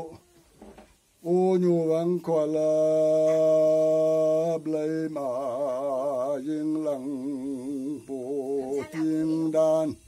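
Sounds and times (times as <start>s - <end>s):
man chanting: 1.2s - 10.0s.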